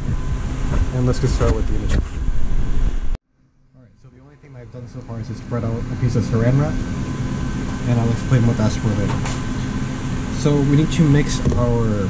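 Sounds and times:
low air handling rumble: 0:00.0 - 0:03.2, 0:03.8 - 0:12.0.

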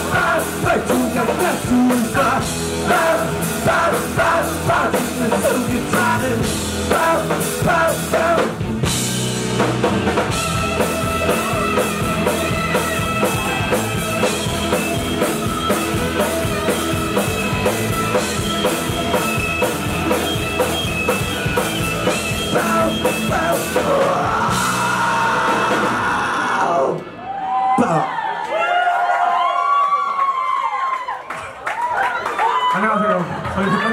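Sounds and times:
drum kit fast beat: 0:00.0 - 0:26.2
bass guitar: 0:00.0 - 0:27.6
electric guitar: 0:00.0 - 0:27.7
singer screaming: 0:22.5 - 0:30.9, 0:32.5 - 0:33.9.

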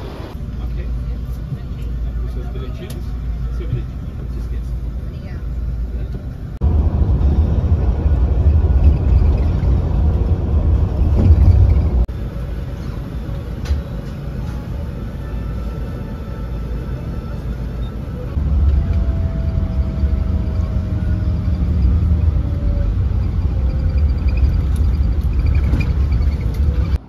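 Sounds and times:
coach engine and road rumble: 0:00.0 - 0:27.0.

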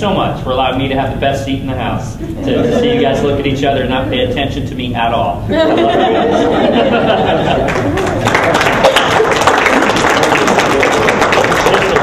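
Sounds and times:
people laughing: 0:02.2 - 0:04.5, 0:05.5 - 0:11.1
people applauding: 0:07.4 - 0:12.0.

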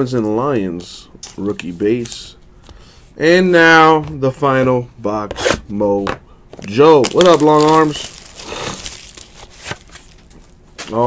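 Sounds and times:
hands handling cardboard box: 0:06.5 - 0:11.0.

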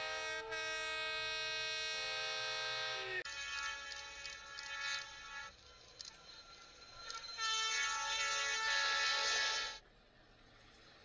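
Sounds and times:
locomotive air horn blasts: 0:00.0 - 0:03.5, 0:07.5 - 0:09.8.

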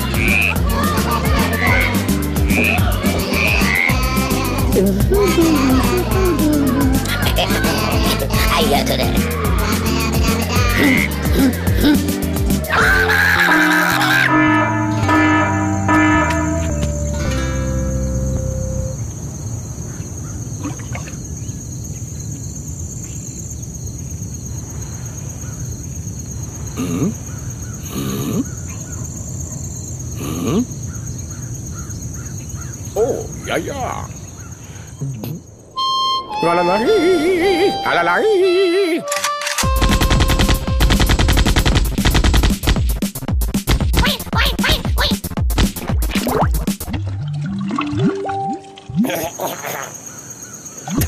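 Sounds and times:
frog croaks: 0:00.0 - 0:00.6, 0:01.6 - 0:04.8, 0:26.6 - 0:29.2, 0:30.0 - 0:35.8, 0:48.3 - 0:51.0
held musical note: 0:14.2 - 0:19.0, 0:35.8 - 0:40.8
high chirring: 0:35.6 - 0:40.8
rapid percussive hits: 0:39.6 - 0:47.0.

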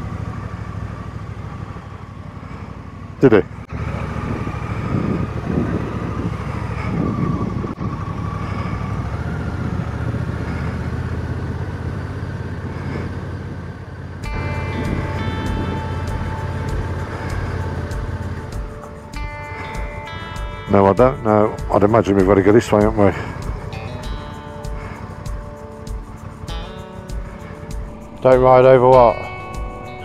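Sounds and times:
motorcycle engine running: 0:00.0 - 0:30.0
wind noise on microphone: 0:03.7 - 0:10.7, 0:14.2 - 0:29.7
background music sustained notes: 0:14.2 - 0:30.0.

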